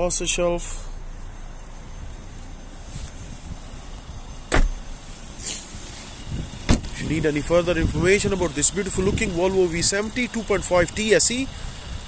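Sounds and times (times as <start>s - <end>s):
low steady rumble: 0.0s - 12.0s
car door shutting: 4.4s - 7.1s.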